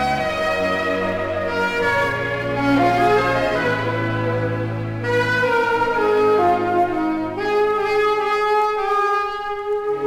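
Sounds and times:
orchestral sustained chords: 0:00.0 - 0:10.0.

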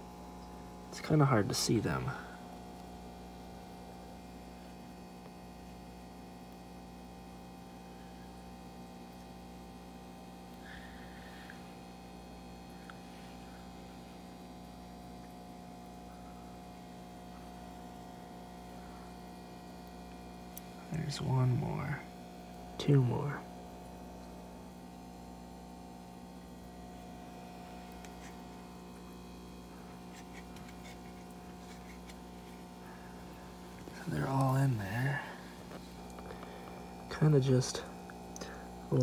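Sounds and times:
steady electrical hum: 0:00.0 - 0:39.0.

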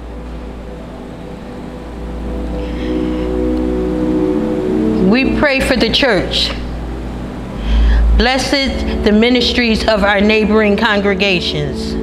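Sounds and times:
organ sustained chords: 0:00.0 - 0:12.0.

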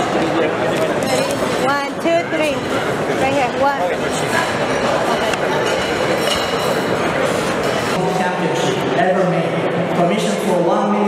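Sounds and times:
crowd chatter: 0:00.0 - 0:11.0
man speaking over microphone: 0:08.0 - 0:11.0.

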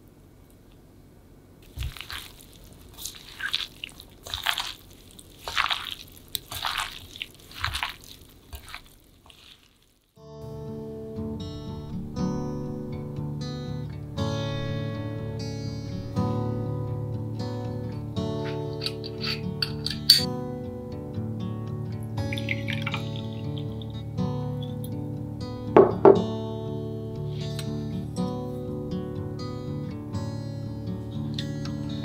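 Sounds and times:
wet squelching of food tossing: 0:01.6 - 0:10.2, 0:22.2 - 0:24.1
acoustic guitar music: 0:10.2 - 0:32.0.

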